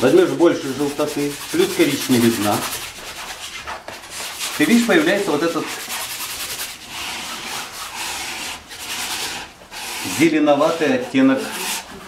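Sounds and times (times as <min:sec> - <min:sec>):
palette knife scraping paint on canvas: 0:00.0 - 0:12.0.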